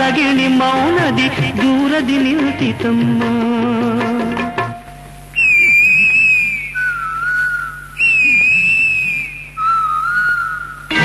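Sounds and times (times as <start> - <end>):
faint steady low hum: 0.0 - 11.0
high whistle-like melody: 5.4 - 11.0.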